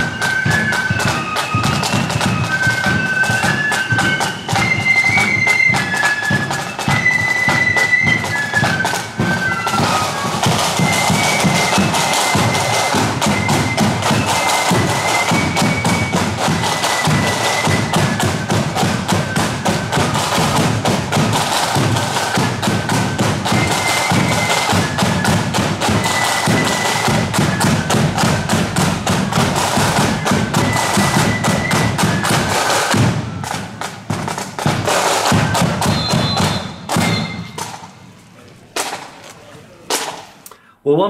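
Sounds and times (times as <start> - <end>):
flutes playing: 0.0 - 38.5
heavy drumming: 0.0 - 39.2
heavy drum strike: 32.9 - 37.9.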